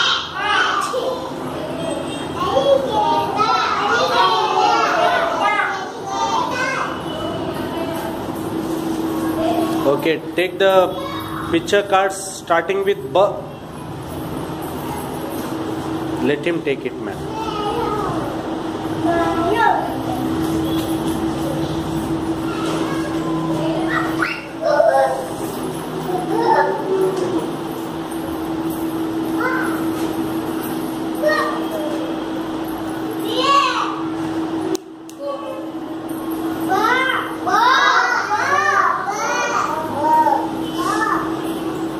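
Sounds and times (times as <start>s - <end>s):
young children calling out: 0.0s - 1.4s, 11.0s - 11.6s, 17.3s - 18.3s, 22.4s - 25.4s, 36.7s - 41.4s
room noise: 0.0s - 41.9s
steady hum: 0.0s - 41.9s.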